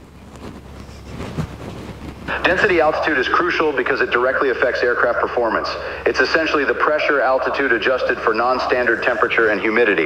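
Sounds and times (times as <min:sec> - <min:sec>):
wind rumble on microphone: 0:00.0 - 0:02.4.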